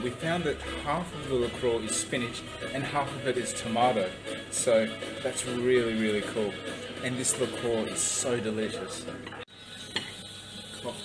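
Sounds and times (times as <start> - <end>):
restaurant background hiss: 0.0 - 11.0.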